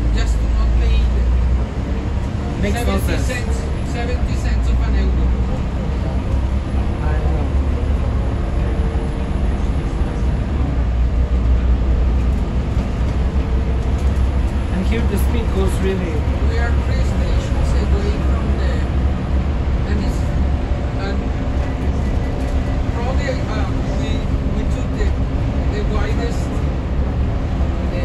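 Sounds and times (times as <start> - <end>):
bus engine and road rumble: 0.0 - 28.0.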